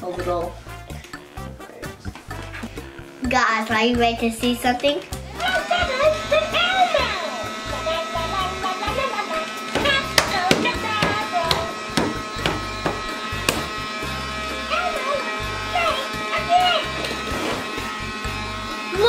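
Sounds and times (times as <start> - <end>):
toy fan motor buzzing: 0.0 - 19.0.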